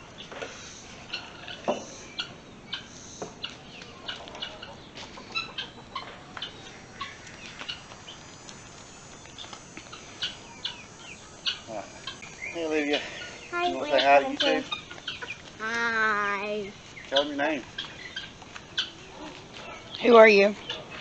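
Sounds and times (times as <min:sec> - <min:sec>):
birds chirping: 0:00.0 - 0:21.0.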